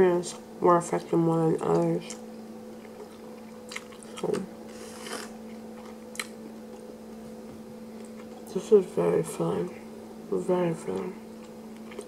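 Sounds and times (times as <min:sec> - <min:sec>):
faint steady hum: 0:00.0 - 0:12.0
close chewing: 0:02.8 - 0:04.4
wet mouth sound: 0:04.8 - 0:05.4.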